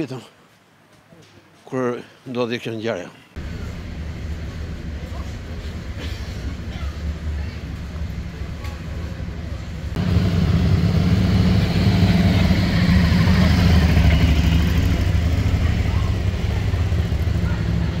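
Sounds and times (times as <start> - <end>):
car engine running: 9.9 - 17.6
crowd voices: 12.1 - 18.0.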